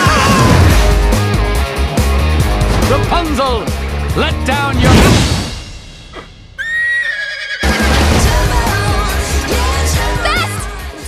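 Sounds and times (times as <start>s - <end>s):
cartoon horse whinny: 6.6s - 7.9s.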